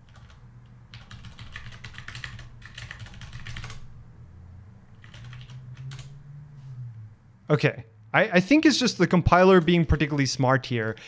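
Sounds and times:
typing on computer keyboard: 0.0 - 3.9, 5.0 - 6.2.

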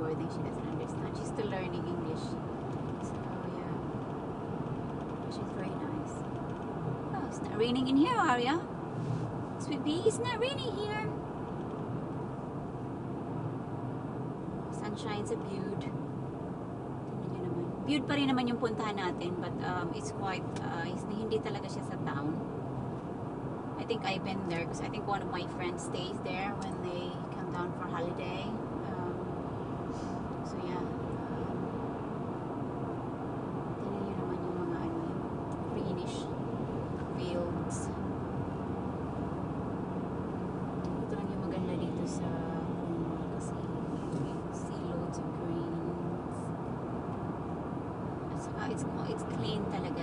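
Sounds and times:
car road and engine noise: 0.0 - 50.0.

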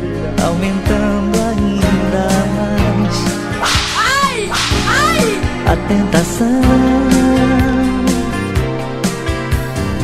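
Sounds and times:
dance music: 3.1 - 6.5
whooshing sweep effect: 3.4 - 5.9.

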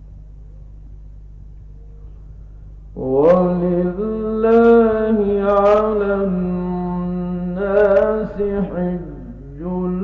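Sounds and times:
low steady hum: 0.0 - 10.0
man reciting melodically: 3.0 - 10.0.

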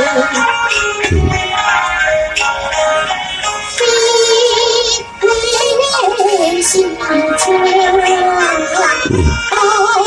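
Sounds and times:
person singing with vibrato: 0.0 - 1.6, 3.7 - 10.0.

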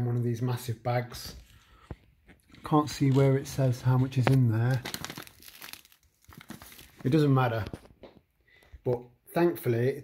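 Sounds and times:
plastic bag crinkling: 2.2 - 7.9.

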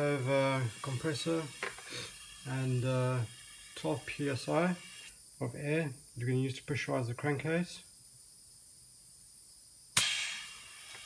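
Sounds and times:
compressed air hissing: 0.0 - 5.3, 9.9 - 11.0
sharp click: 10.0 - 11.0.

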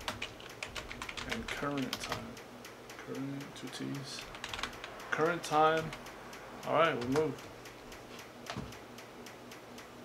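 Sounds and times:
rapid ticking: 0.0 - 10.0.

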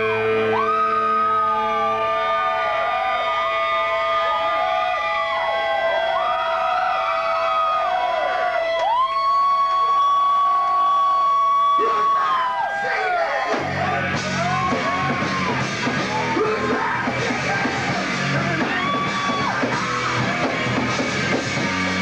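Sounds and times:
electric guitar feedback whine: 0.0 - 5.4.

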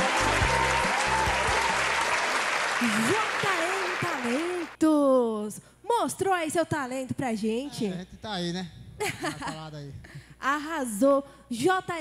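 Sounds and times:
backing track music: 0.0 - 2.5
audience applause: 0.0 - 4.8.

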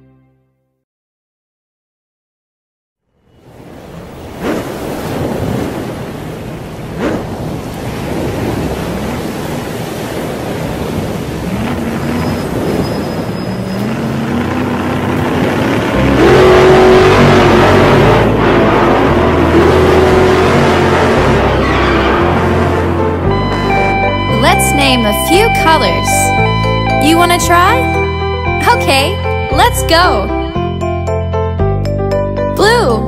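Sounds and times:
rush of noise: 3.6 - 24.3
cartoon engines revving: 11.0 - 30.6.

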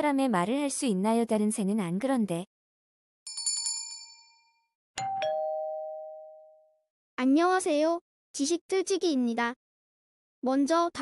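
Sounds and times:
two-note doorbell chime: 5.0 - 6.8.

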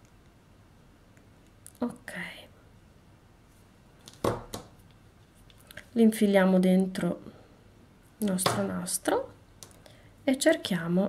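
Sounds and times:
pliers knocking on table: 4.2 - 4.7, 8.4 - 8.7.

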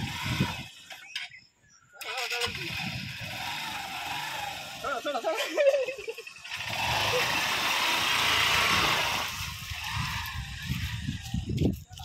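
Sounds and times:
motorcycle engine revving: 0.0 - 1.4, 2.0 - 5.4, 6.2 - 11.8.

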